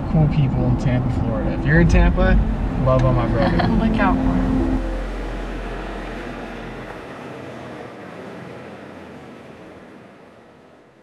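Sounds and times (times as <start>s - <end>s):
car road noise rush: 0.0s - 11.0s
low road rumble: 0.0s - 11.0s.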